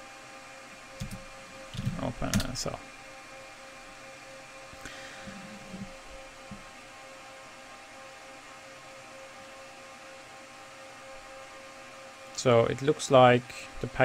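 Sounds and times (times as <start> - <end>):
hum and fan noise: 0.0 - 14.0.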